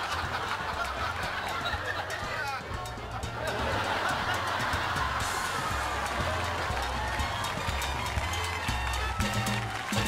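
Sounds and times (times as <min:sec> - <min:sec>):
upbeat dance band music with horns: 0:00.0 - 0:10.0.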